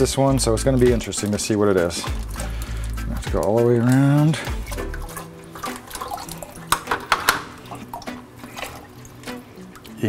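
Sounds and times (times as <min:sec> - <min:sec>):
quiet background music: 0:00.0 - 0:10.0
water splashing into plastic tub: 0:00.0 - 0:10.0.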